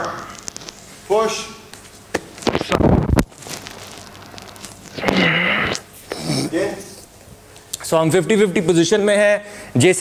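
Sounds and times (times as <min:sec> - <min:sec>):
rustling and shuffling on mat: 0:01.8 - 0:05.1.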